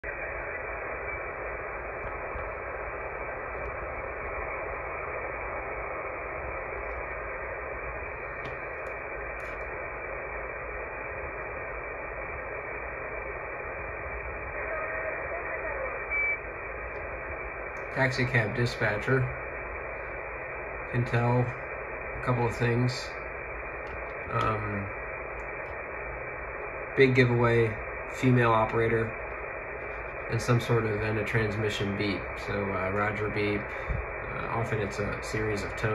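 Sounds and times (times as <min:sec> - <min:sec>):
radio static: 0:00.0 - 0:35.9
faint woman's voice over radio: 0:14.4 - 0:16.4.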